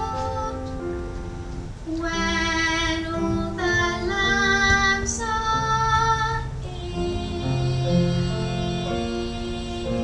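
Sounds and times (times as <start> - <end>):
children singing held notes: 1.8 - 10.0.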